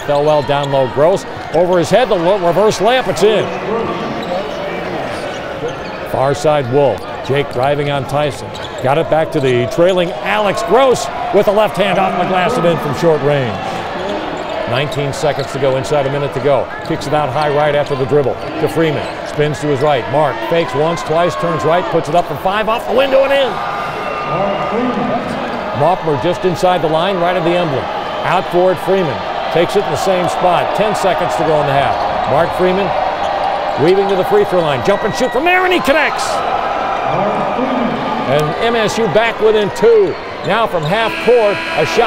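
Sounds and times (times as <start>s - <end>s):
male sports announcer talking: 0.0s - 5.2s, 6.1s - 14.0s, 14.7s - 23.6s, 24.3s - 33.0s, 33.8s - 36.5s, 37.1s - 42.0s
arena crowd noise: 0.0s - 42.0s.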